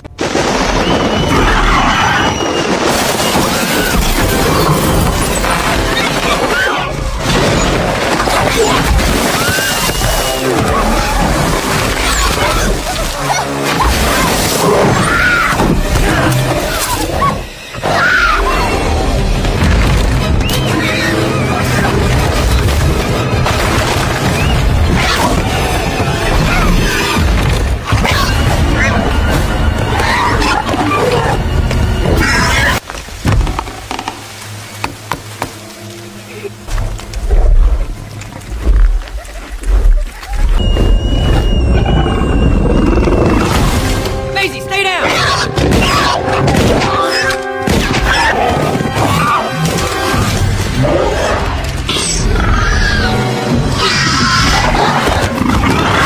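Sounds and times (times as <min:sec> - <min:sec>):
tense low orchestral music: 0:00.2 - 0:56.0
dinosaur screeching: 0:16.6 - 0:19.0, 0:50.9 - 0:56.0.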